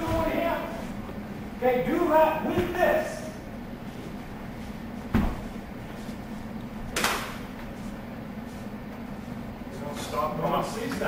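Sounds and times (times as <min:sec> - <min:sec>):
thuds of body impacts: 0:05.0 - 0:05.6.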